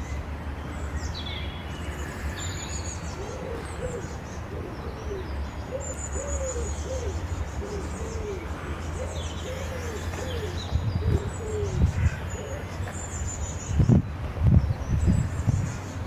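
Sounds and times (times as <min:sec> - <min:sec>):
soft low cooing calls: 0:01.9 - 0:13.4.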